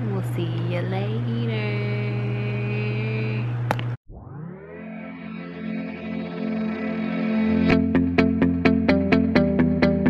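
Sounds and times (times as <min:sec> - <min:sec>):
steady low hum: 0:00.0 - 0:04.3.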